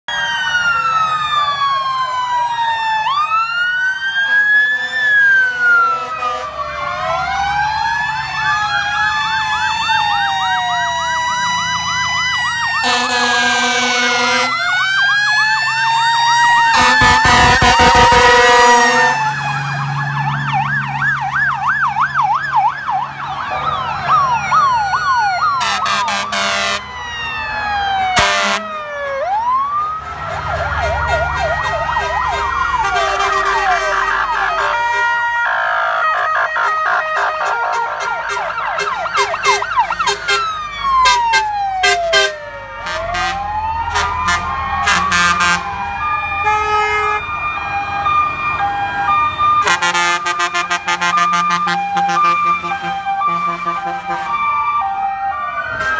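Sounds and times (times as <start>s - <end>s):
fire truck sirens wailing: 0.0s - 55.9s
long horn blasts: 12.8s - 14.6s, 16.7s - 19.2s, 25.6s - 26.8s, 28.2s - 28.7s, 32.0s - 35.1s, 41.8s - 45.7s, 46.4s - 47.2s, 49.6s - 54.4s.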